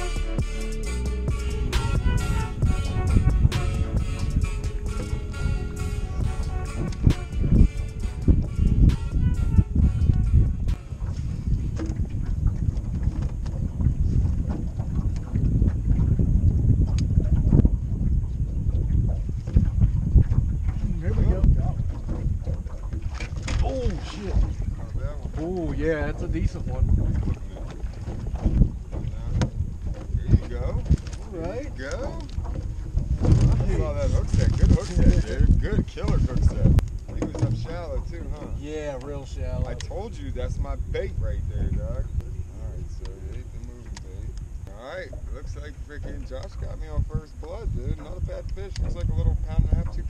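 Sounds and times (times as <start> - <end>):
guitar and drum music: 0.0 - 10.9
wind buffeting microphone: 0.0 - 50.0.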